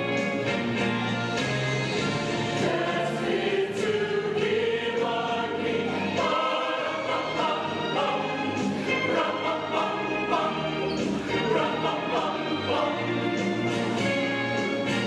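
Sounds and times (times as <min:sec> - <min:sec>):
choir singing: 0:02.1 - 0:15.0.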